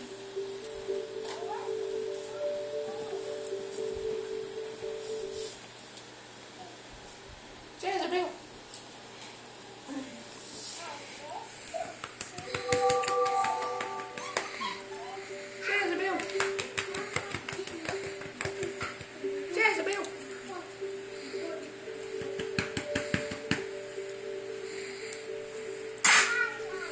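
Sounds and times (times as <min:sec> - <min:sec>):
music with long steady note: 0:00.0 - 0:05.6, 0:12.6 - 0:17.2, 0:18.1 - 0:26.9
sharp clicks and taps: 0:22.2 - 0:23.7.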